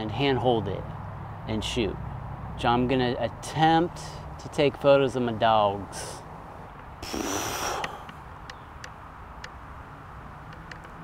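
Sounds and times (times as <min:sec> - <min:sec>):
faint ticks: 0:07.7 - 0:09.6.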